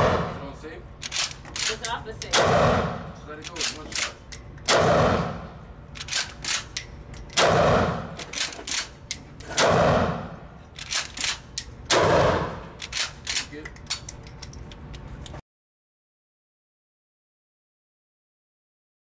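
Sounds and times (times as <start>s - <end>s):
shotgun blasts ringing indoors: 0.0s - 0.5s, 2.3s - 3.2s, 4.0s - 5.6s, 7.3s - 8.5s, 9.5s - 10.4s, 11.9s - 12.7s.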